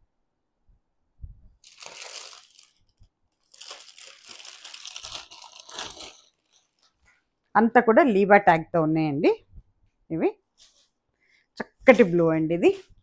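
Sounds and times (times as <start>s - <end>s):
plastic packaging crinkling: 1.6s - 7.2s.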